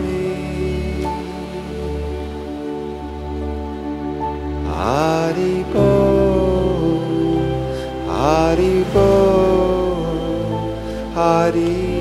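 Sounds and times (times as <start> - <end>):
man singing a mantra: 4.7 - 12.0.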